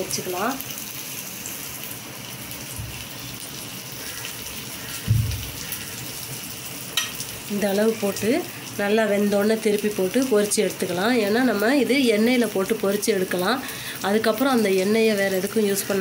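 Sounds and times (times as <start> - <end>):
batter sizzling on hot griddle: 0.0 - 16.0
dull thud: 5.1 - 5.5.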